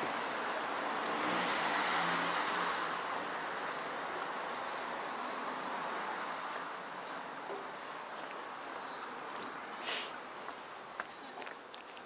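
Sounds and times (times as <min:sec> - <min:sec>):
car passing: 0:00.0 - 0:08.7
outdoor background noise: 0:00.0 - 0:12.0.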